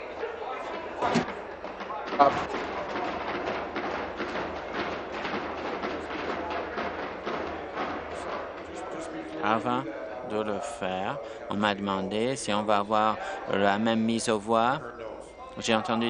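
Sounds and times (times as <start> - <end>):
murmur of voices: 0.0 - 16.0.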